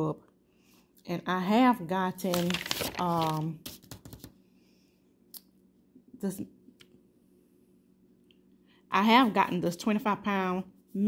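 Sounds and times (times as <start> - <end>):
low steady hum: 0.0 - 11.0
paper rustle: 2.2 - 4.3.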